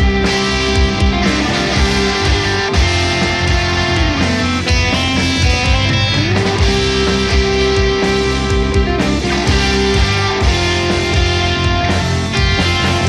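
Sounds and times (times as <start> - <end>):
bass and drums: 0.0 - 13.0
electric guitars: 0.0 - 13.0.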